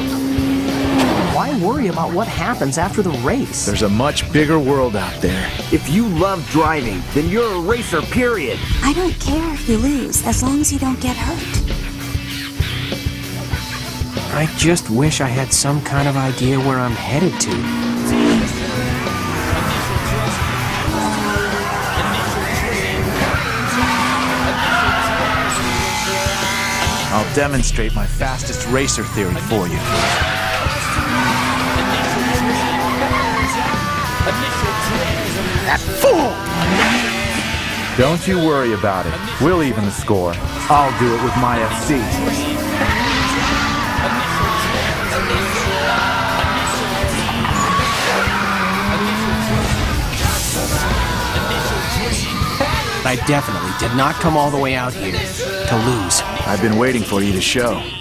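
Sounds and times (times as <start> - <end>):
racing car engines: 0.0 - 58.0
fast dance music: 2.3 - 58.0
tyre squeal: 17.1 - 27.2, 29.8 - 35.2, 40.4 - 52.9.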